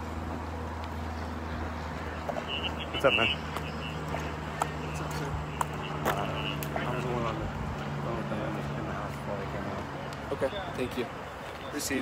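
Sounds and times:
steady low hum: 0.0s - 9.6s
people talking outdoors: 0.0s - 12.0s.

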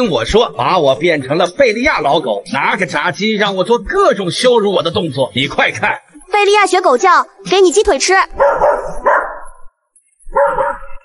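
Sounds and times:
dog barking: 8.4s - 9.6s, 10.3s - 11.0s.

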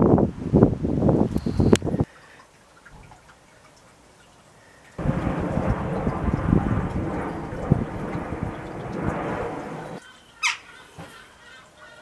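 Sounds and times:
wind buffeting microphone: 0.0s - 2.1s, 5.0s - 10.0s.

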